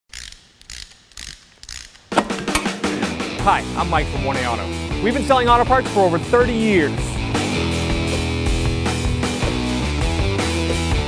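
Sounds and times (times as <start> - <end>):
mechanical clicking: 0.1 - 2.8.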